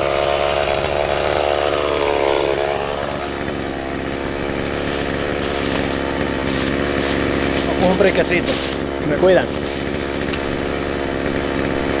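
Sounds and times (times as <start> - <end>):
chainsaw engine running: 0.0 - 12.0.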